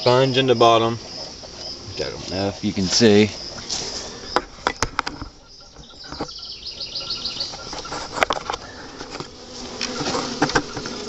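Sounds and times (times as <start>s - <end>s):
honey bees buzzing: 0.0s - 11.0s.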